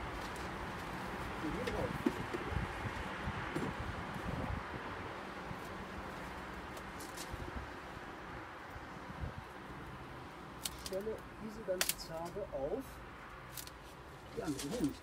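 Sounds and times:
rustling noise: 0:05.4 - 0:07.7, 0:13.5 - 0:15.0.

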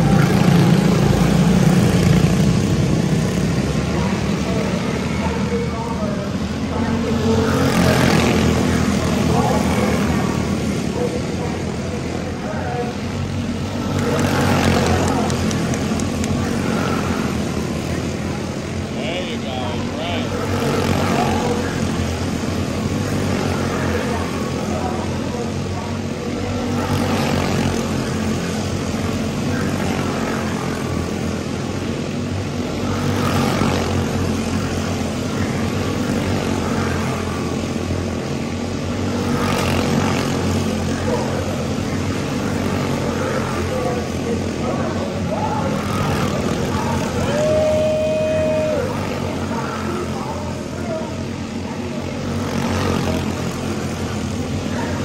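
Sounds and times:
small race car engines: 0:00.0 - 0:55.0.

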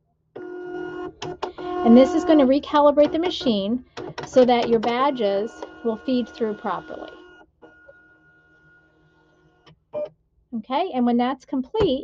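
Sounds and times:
printer feed motor whine: 0:00.4 - 0:09.7.

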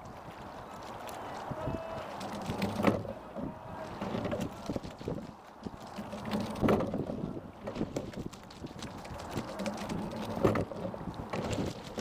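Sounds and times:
water along boat hull: 0:00.0 - 0:12.0
wind on microphone: 0:00.0 - 0:12.0
oar knocking: 0:02.2 - 0:05.2.

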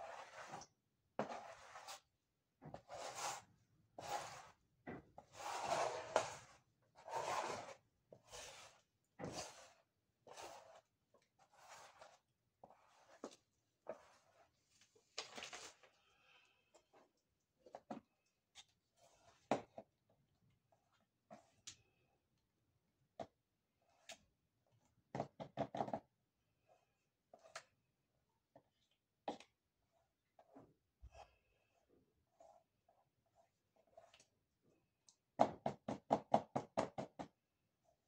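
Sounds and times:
brush rubbing: 0:08.3 - 0:14.8.

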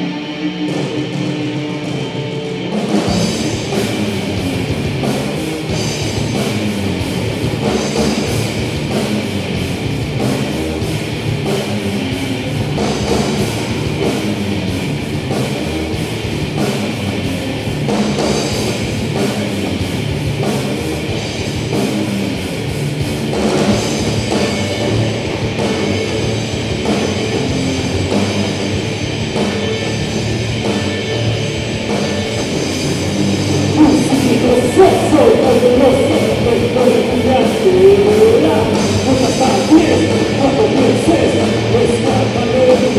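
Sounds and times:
bass guitar: 0:00.0 - 0:42.9
distorted electric guitars: 0:00.0 - 0:42.9
drum kit beat: 0:02.7 - 0:42.9.

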